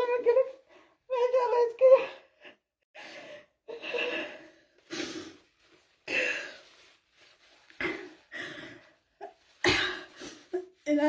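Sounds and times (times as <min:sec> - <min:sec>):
woman coughing: 0:09.6 - 0:10.2.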